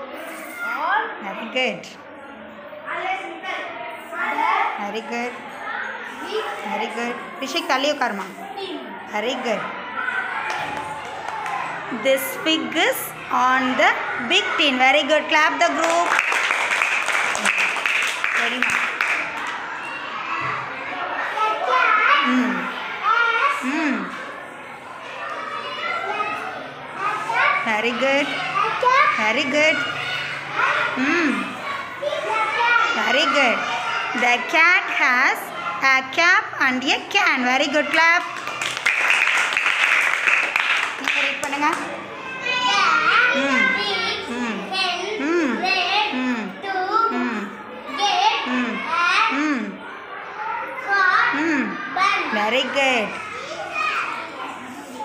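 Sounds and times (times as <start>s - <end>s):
children talking: 0.0s - 55.0s.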